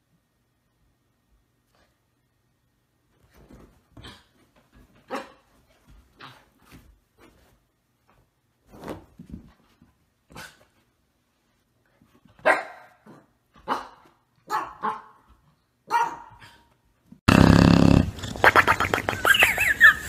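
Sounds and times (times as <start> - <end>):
dog barking: 12.4 - 15.2, 15.9 - 16.6.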